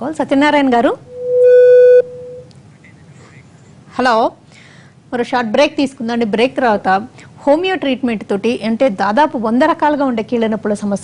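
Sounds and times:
telephone line beep: 1.1 - 2.5.

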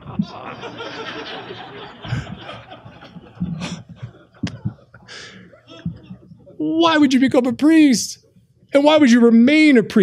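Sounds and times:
audience laughing: 0.0 - 6.6
speaker laughing: 0.0 - 6.6.

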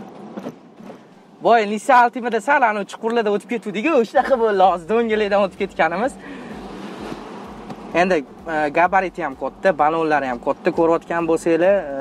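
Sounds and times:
car road and engine noise: 0.0 - 12.0.

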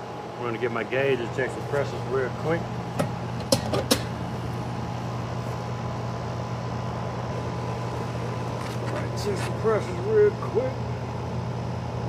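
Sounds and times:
air conditioner unit humming: 0.0 - 12.0.

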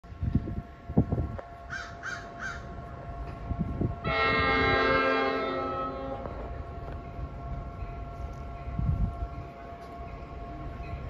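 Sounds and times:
crow cawing: 1.7 - 2.7.

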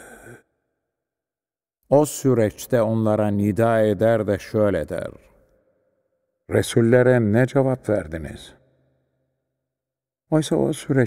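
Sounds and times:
man exhaling breath: 0.0 - 0.5
man speaking: 1.9 - 5.3, 6.5 - 8.6, 10.3 - 11.0.

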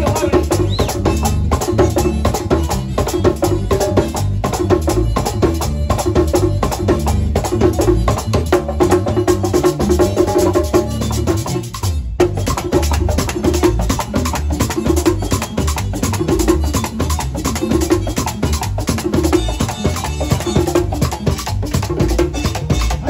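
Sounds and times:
bass line: 0.0 - 23.0
congas slapping: 0.0 - 23.0
live band music: 0.0 - 23.0.

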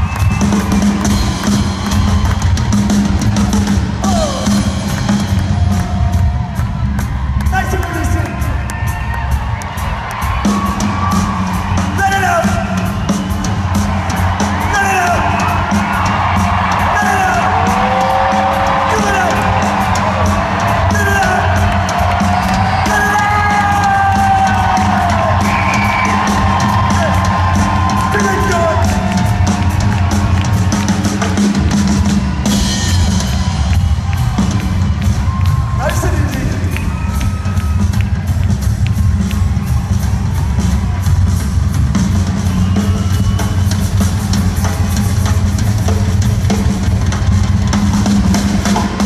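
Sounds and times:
crowd whooping and yelling: 0.0 - 45.8
live rock drum solo: 0.0 - 49.0.

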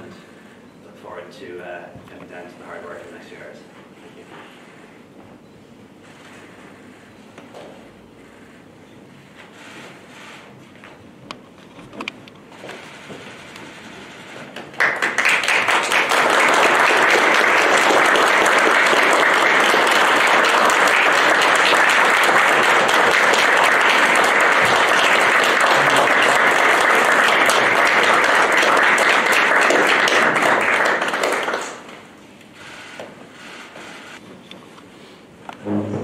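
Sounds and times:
people applauding: 14.6 - 32.0.

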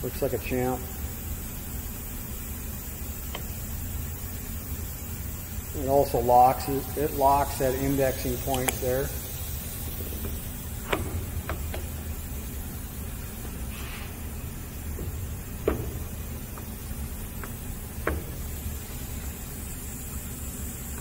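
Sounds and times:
faint hiss: 0.0 - 21.0
steady low hum: 0.0 - 21.0
metal clicks and knocks: 10.0 - 12.0, 14.9 - 18.5.

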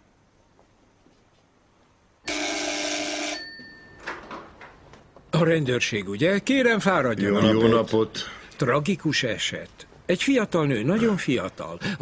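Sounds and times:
electric doorbell ringing: 2.3 - 4.1.

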